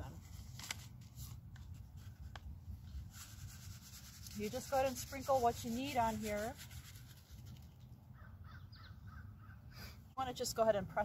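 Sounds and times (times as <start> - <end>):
paper seed packet rustling: 0.0 - 3.6.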